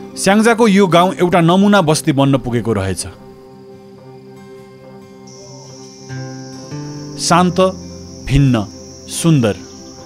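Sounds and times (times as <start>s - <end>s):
background music with low notes: 0.0s - 10.0s
high-pitched insect drone: 2.7s - 10.0s.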